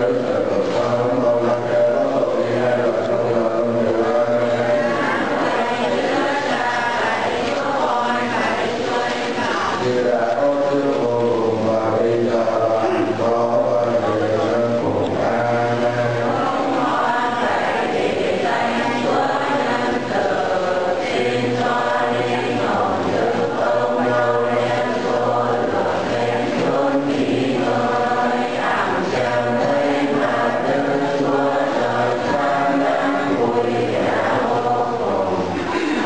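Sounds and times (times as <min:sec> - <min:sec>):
group chanting a hymn: 0:00.0 - 0:36.0.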